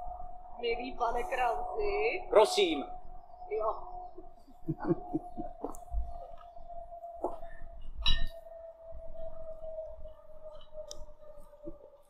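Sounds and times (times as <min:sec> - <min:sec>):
steady high-pitched hum: 0:00.0 - 0:12.0.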